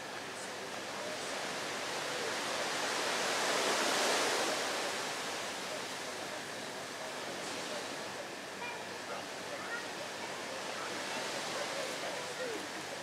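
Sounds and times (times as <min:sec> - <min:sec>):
sea surf washing ashore: 0:00.0 - 0:13.0.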